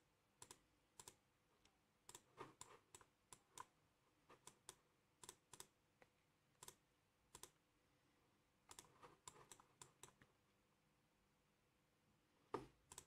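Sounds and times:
computer mouse and keys clicking: 0:00.4 - 0:07.6, 0:08.7 - 0:10.4, 0:12.5 - 0:13.0.

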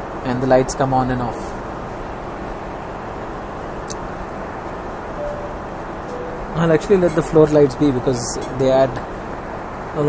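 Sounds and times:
airplane cabin engine rush: 0:00.0 - 0:10.0.

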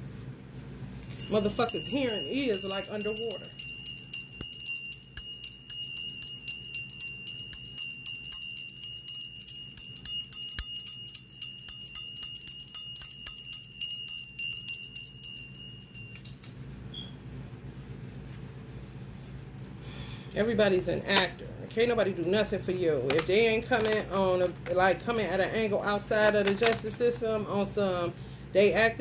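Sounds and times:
faint room hum: 0:00.0 - 0:29.0
high-pitched ringing tone: 0:01.1 - 0:17.2.

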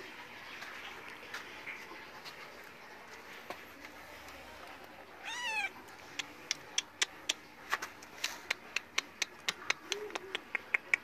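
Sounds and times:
kitten meowing: 0:05.2 - 0:05.8.

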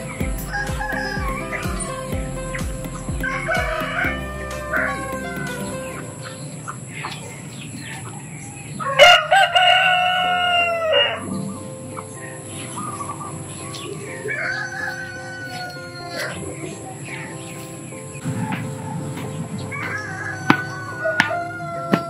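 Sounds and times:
chickens clucking: 0:02.8 - 0:22.0
rooster crowing: 0:08.8 - 0:11.3, 0:14.3 - 0:16.4, 0:18.4 - 0:22.0.

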